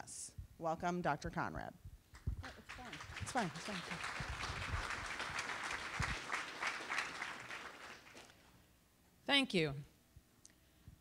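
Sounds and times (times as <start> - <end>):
audience applauding: 2.4 - 8.4.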